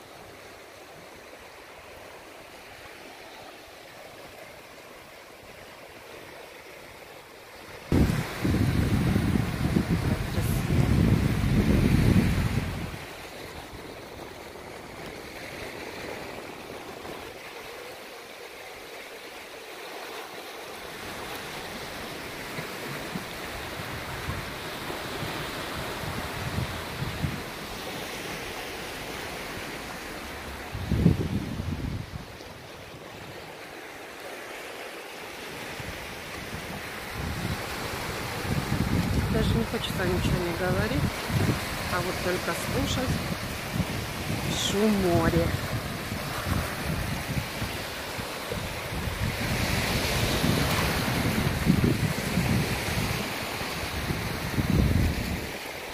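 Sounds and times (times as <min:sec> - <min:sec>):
wind rumbling on microphone: 0:07.8 - 0:17.4, 0:21.0 - 0:33.7, 0:35.5 - 0:55.9
waves breaking on rock: 0:07.8 - 0:18.4, 0:20.2 - 0:55.9.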